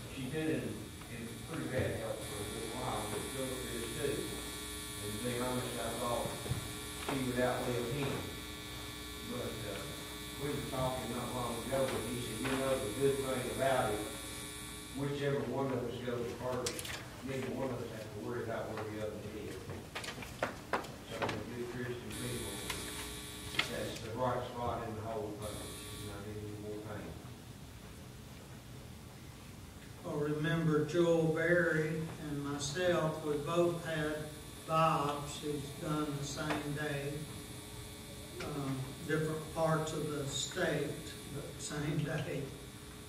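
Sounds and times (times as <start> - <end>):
electrical hum and buzz: 0.0 - 43.0.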